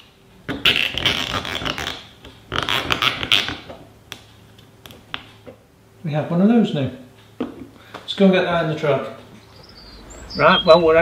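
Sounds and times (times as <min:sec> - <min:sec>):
zip tie rasping: 0:00.6 - 0:03.7.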